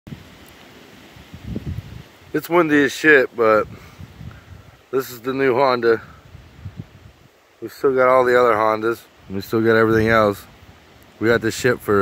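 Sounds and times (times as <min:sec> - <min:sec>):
wind buffeting microphone: 0:01.1 - 0:02.6, 0:03.4 - 0:07.4, 0:08.5 - 0:12.0.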